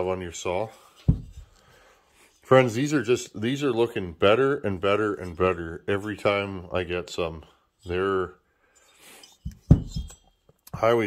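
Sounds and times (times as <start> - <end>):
metal parts clinking: 8.8 - 10.5.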